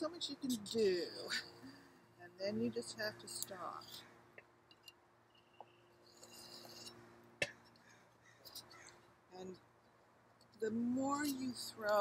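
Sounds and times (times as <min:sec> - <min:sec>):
potter's wheel humming: 0:00.0 - 0:04.9
knife scraping clay: 0:06.1 - 0:08.9.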